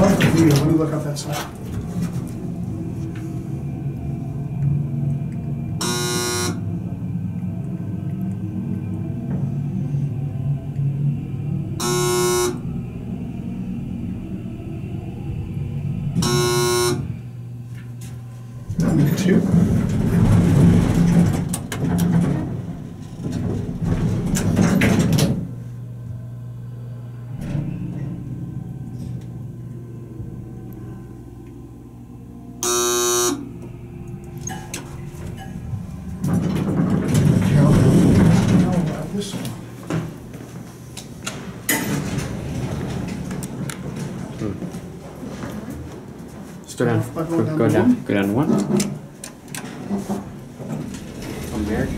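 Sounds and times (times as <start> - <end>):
elevator low hum: 0.0 - 51.9
elevator electronic beeps: 5.8 - 7.0, 11.8 - 13.1, 16.0 - 17.3, 32.6 - 35.1.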